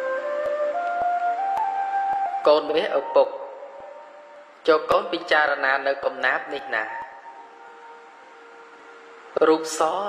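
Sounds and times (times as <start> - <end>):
faint hiss: 0.0 - 10.0
faint steady hum-like tone: 0.0 - 10.0.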